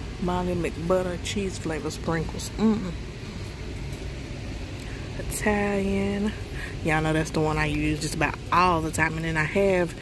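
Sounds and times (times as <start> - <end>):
store background rumble and hiss: 0.0 - 10.0.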